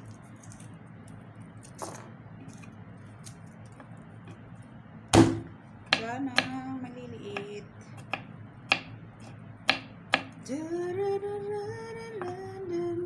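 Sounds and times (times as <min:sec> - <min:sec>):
knife chopping on wooden board: 0:05.1 - 0:06.6, 0:07.4 - 0:10.4.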